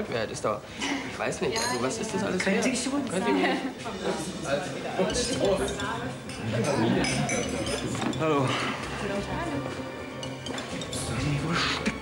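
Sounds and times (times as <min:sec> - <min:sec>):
background talk: 0:00.0 - 0:12.0
drinking glasses clinking: 0:05.0 - 0:08.3.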